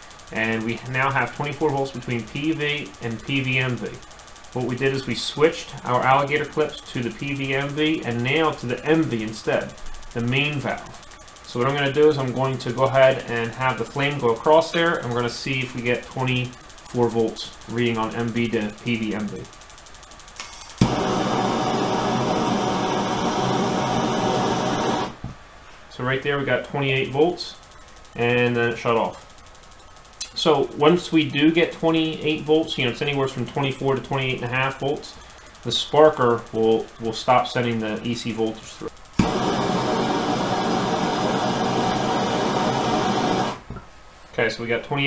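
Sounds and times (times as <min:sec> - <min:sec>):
torch ignition click: 0:03.0 - 0:25.2, 0:38.9 - 0:43.8
gas torch flame hissing: 0:20.4 - 0:25.2, 0:34.7 - 0:43.7.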